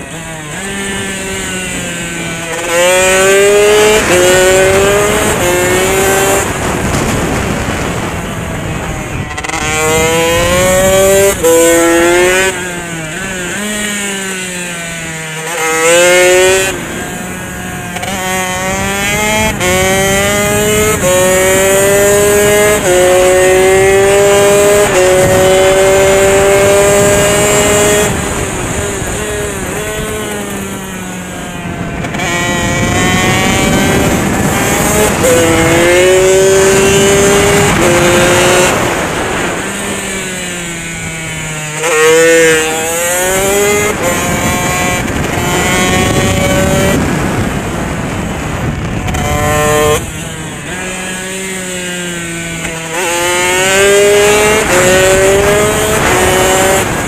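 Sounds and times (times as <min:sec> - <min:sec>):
motorcycle engine revving through gears: 0:00.0 - 0:57.0
wind rushing: 0:00.2 - 0:14.0, 0:15.4 - 0:57.0.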